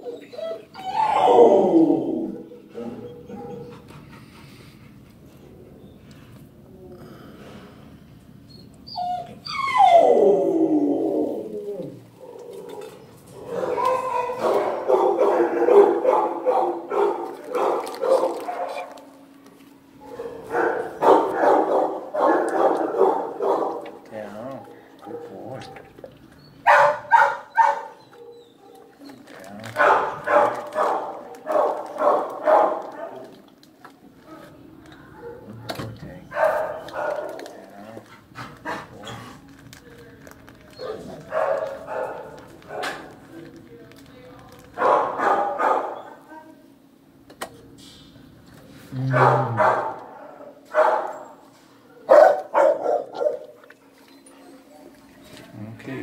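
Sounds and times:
dogs barking: 0:02.2 - 0:04.1, 0:12.2 - 0:19.3, 0:20.0 - 0:33.4, 0:35.2 - 0:39.3, 0:40.7 - 0:43.2, 0:44.8 - 0:46.6, 0:49.1 - 0:53.9.

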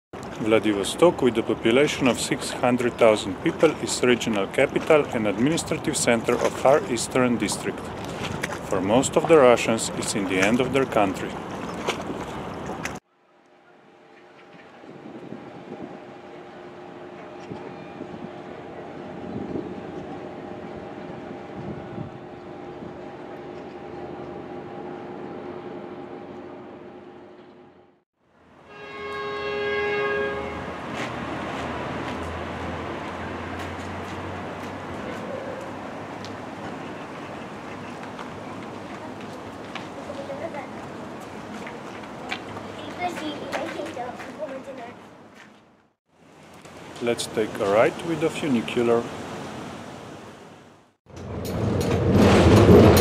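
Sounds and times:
busy outdoor noise: 0:00.2 - 0:27.7, 0:29.9 - 0:50.0
low steady drone: 0:13.1 - 0:28.0
horn sounding: 0:28.6 - 0:30.9.

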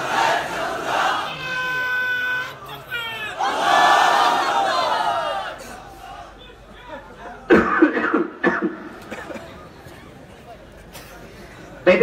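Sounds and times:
crowd shouting together: 0:00.0 - 0:07.5.

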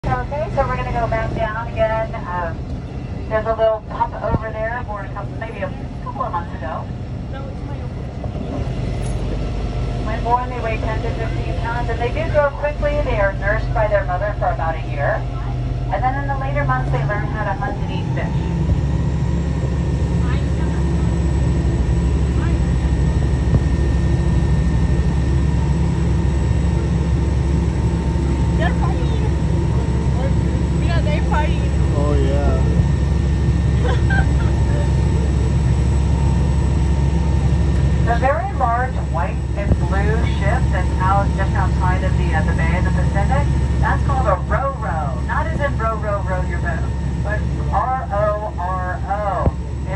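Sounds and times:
boat engine rumbling: 0:00.0 - 0:49.9
faint steady whine: 0:00.0 - 0:49.9.

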